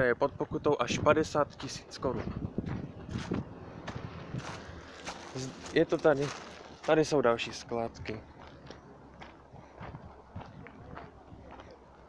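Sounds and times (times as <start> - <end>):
faint outdoor background noise: 0.0 - 12.0
footsteps in grass and gravel: 1.5 - 12.0.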